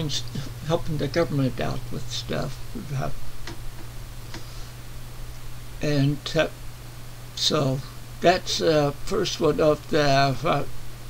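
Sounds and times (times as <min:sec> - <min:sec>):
person saying uh: 0:00.0 - 0:03.2
steady low hum: 0:00.0 - 0:11.0
soft clicks: 0:03.4 - 0:04.4.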